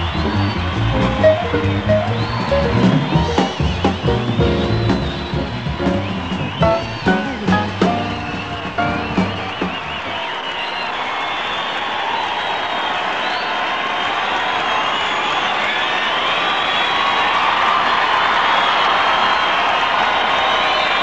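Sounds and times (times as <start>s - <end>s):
band and singer: 0.0s - 10.2s
audience applauding and cheering: 0.0s - 21.0s
whistles: 0.0s - 21.0s.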